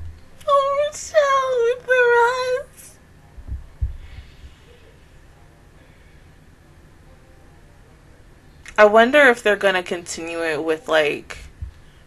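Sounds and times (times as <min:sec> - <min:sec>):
soft low thumps: 0:03.3 - 0:04.6, 0:11.4 - 0:11.8.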